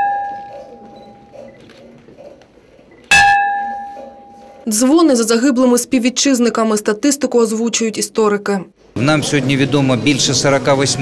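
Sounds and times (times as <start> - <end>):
bell clanging: 0.0 - 1.4, 3.1 - 4.6.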